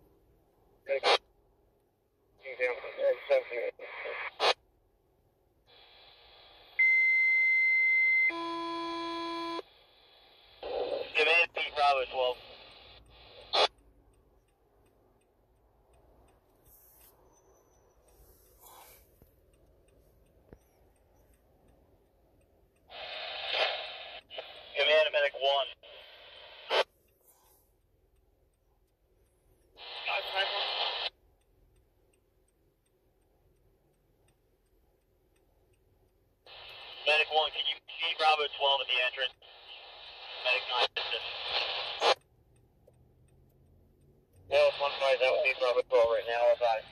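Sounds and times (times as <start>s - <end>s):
faint radio hiss: 0.8s - 1.3s, 2.4s - 4.6s, 5.6s - 6.9s, 9.6s - 13.8s, 18.0s - 19.4s, 22.8s - 27.8s, 29.8s - 31.2s, 36.5s - 42.2s, 44.4s - 46.9s
garbled radio transmissions: 0.9s - 1.2s, 2.4s - 4.6s, 9.6s - 13.8s, 22.9s - 26.9s, 29.8s - 31.1s, 36.5s - 42.2s, 44.5s - 46.9s
radio squelch clicks: 2.4s - 4.6s, 10.5s - 27.2s, 28.9s - 31.2s, 36.5s - 46.9s.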